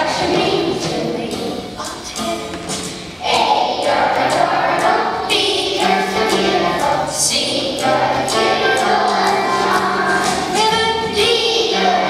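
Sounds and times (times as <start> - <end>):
children singing in a choir: 0.0 - 1.8, 3.1 - 12.0.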